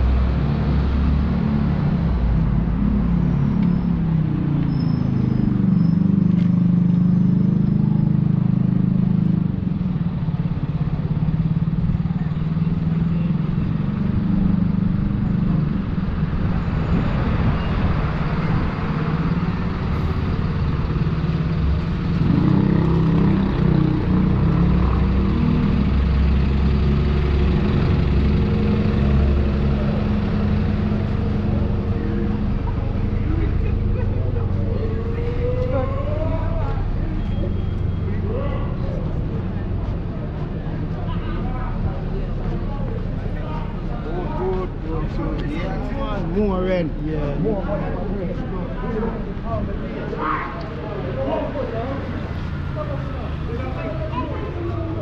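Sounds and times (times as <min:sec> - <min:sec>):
bus engine humming: 0:00.0 - 0:55.0.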